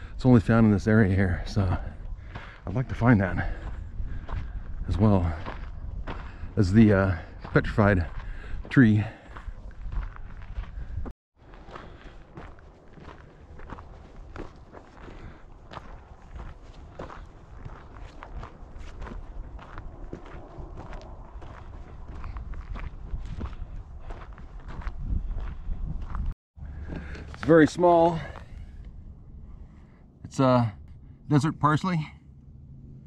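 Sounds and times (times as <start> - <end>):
low steady rumble: 0.0 - 11.1, 12.2 - 33.0
footsteps on dirt trail: 0.0 - 30.7.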